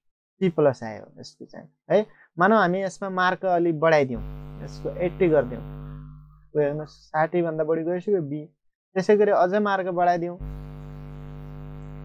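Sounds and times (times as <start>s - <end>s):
person speaking: 4.1s - 8.2s
steady low hum: 4.2s - 7.1s, 10.4s - 12.0s.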